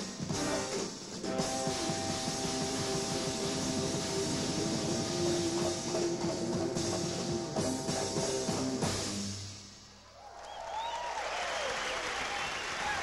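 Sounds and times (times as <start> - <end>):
jazz fusion band playing: 0.0 - 9.5
busy drums and percussion: 0.0 - 9.9.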